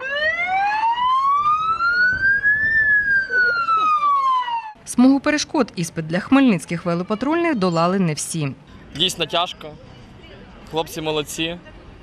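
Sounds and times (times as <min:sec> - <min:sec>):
police siren wail: 0:00.0 - 0:04.8.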